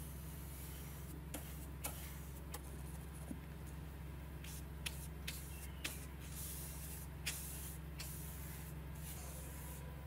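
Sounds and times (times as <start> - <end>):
steady low hum: 0.0 - 10.0
brush sweeping across paper: 0.4 - 2.4, 4.4 - 9.9.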